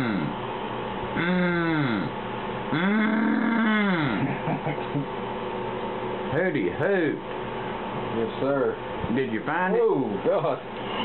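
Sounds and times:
person moaning in pain: 1.2 - 2.1, 2.7 - 4.3.

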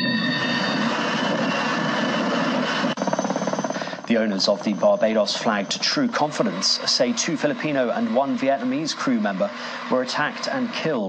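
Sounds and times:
aircraft engine rushing: 0.0 - 11.0.

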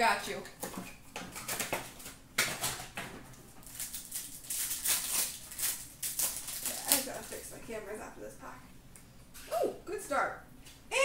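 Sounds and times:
plastic and foil wrappers crinkling: 1.2 - 7.8.

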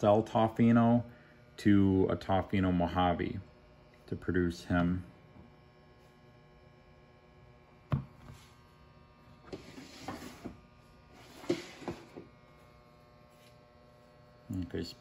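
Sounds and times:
electrical hum: 0.0 - 15.0.

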